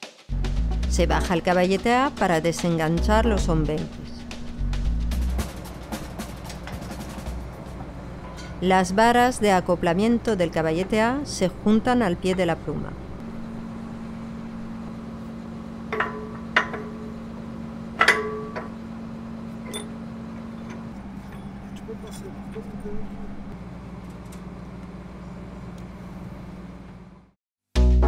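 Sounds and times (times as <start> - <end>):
machinery humming: 0.6 - 27.4.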